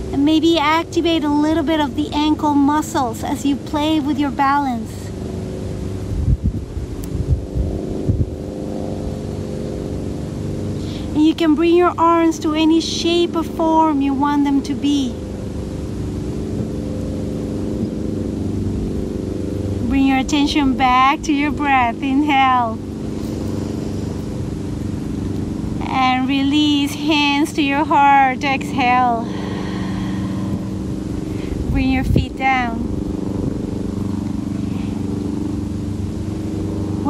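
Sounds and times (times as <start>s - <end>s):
low hum of held tones: 0.0s - 37.0s
wind buffeting microphone: 0.0s - 37.0s.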